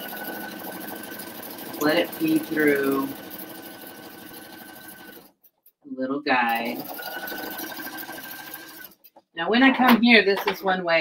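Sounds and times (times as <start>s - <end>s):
sewing machine motor whine: 0.0s - 5.3s, 6.5s - 9.0s
sewing needle ticking: 0.0s - 5.8s, 6.8s - 9.1s.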